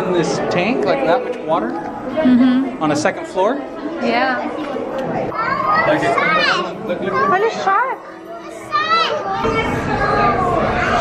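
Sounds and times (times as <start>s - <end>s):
crowd chatter in a hall: 0.0s - 11.0s.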